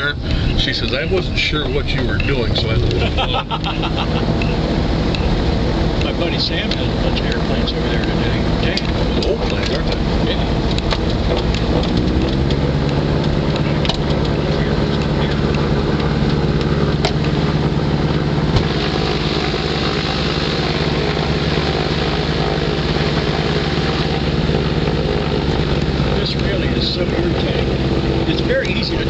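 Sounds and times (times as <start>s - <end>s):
aircraft engine and propeller drone: 0.0s - 29.0s.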